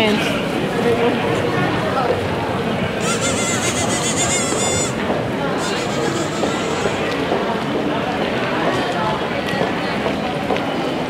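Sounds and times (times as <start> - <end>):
murmur of pedestrian street: 0.0 - 11.0
bird calling harshly: 3.0 - 7.1.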